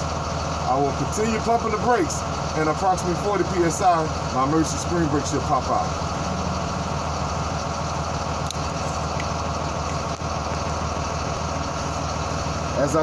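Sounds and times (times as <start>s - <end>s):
air compressor running: 0.0s - 13.0s
bus engine idling: 0.0s - 13.0s.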